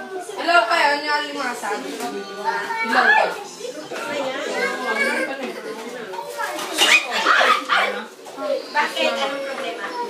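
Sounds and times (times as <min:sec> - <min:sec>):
children's voices: 0:00.0 - 0:10.0
people talking at once: 0:00.0 - 0:10.0.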